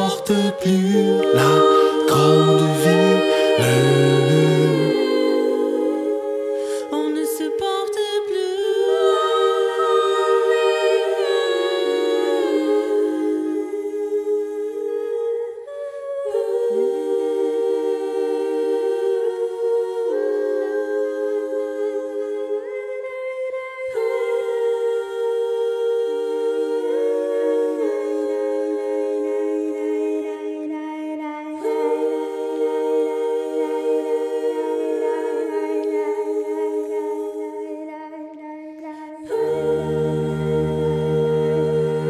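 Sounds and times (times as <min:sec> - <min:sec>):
voices humming sustained chords: 0:00.0 - 0:15.5.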